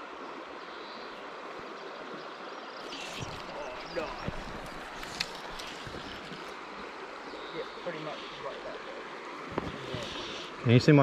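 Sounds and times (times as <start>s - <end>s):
creek flowing: 0.0s - 11.0s.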